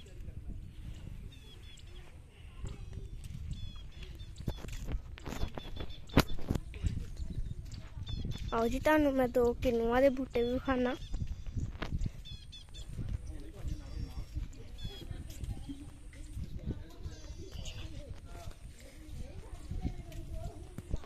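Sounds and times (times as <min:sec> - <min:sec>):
faint distant voices: 0:00.0 - 0:21.0.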